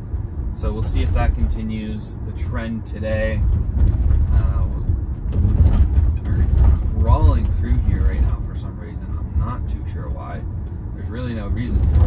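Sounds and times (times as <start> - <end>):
road and tyre rumble: 0.0 - 12.0.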